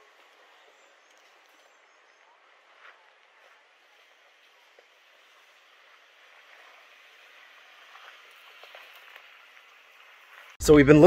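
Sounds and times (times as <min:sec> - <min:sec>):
tyres crunching over dirt and rock: 0:00.0 - 0:10.6.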